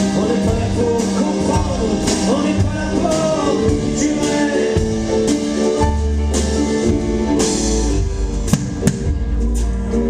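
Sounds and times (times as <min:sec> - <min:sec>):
drum kit: 0:00.0 - 0:10.0
sharp drum hits: 0:08.5 - 0:09.4.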